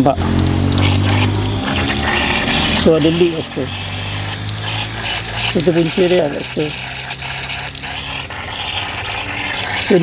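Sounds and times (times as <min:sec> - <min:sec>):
water hissing from a leak: 0:00.0 - 0:10.0.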